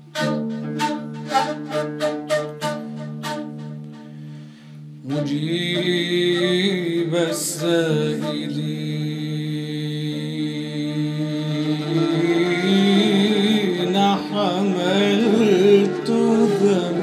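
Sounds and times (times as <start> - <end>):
man chanting: 5.1 - 17.0.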